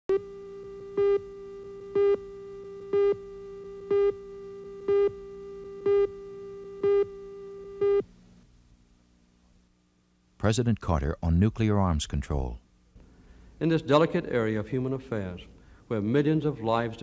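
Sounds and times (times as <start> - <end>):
steady buzzy tone: 0.1 - 10.4.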